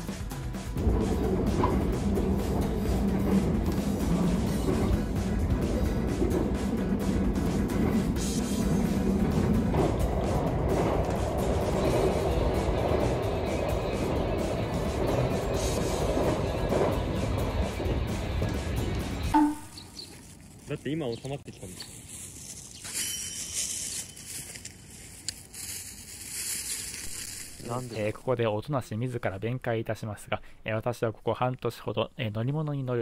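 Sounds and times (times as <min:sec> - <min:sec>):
background music: 0:00.0 - 0:19.8
electric train on rails: 0:00.0 - 0:20.1, 0:22.2 - 0:28.2.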